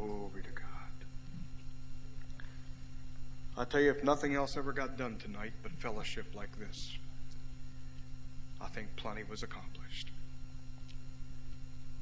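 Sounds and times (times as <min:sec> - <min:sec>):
soft whisper: 0:00.0 - 0:01.6, 0:09.5 - 0:10.2
low electrical hum: 0:00.0 - 0:12.0.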